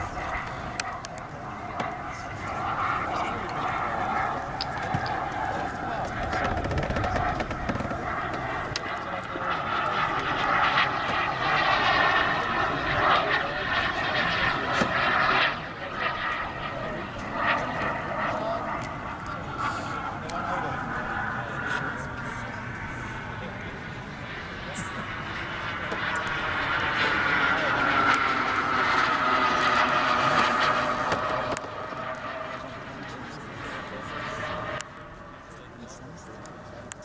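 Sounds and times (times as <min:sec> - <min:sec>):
model jet turbine engines: 0:00.0 - 0:37.0.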